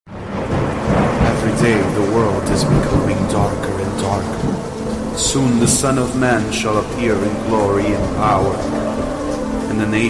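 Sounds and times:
low rumbling thunder: 0:00.1 - 0:10.0
steady rain: 0:00.1 - 0:10.0
person speaking: 0:01.2 - 0:08.8.

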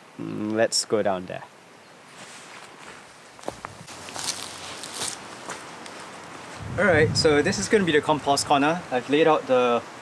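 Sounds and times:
footsteps on grass: 0:02.1 - 0:07.0.

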